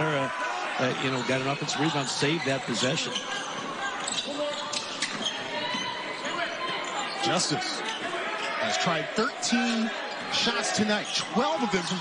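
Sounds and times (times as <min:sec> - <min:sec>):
arena crowd noise: 0:00.0 - 0:12.0
sneakers squeaking: 0:00.9 - 0:08.8, 0:09.9 - 0:12.0.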